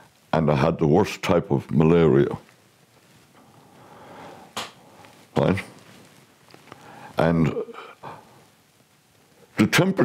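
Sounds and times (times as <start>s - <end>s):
person speaking: 0.4s - 2.5s, 5.3s - 5.8s, 7.1s - 8.2s
faint breath: 3.4s - 5.3s, 6.7s - 8.5s.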